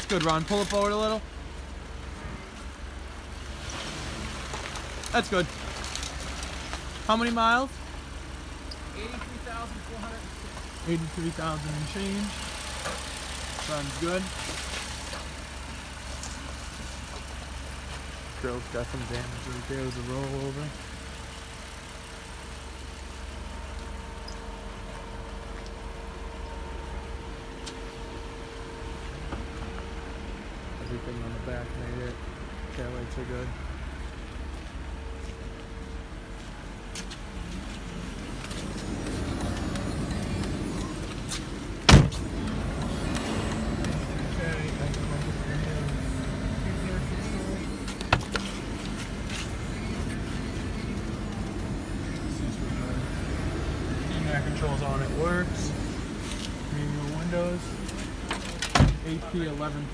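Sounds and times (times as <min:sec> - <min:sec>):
tyres hissing on wet gravel: 0:00.0 - 0:29.0
car engine running low: 0:00.0 - 0:59.9.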